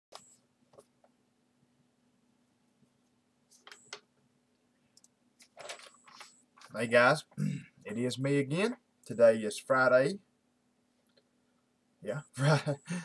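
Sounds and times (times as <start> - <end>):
paper rustling: 5.4 - 6.8.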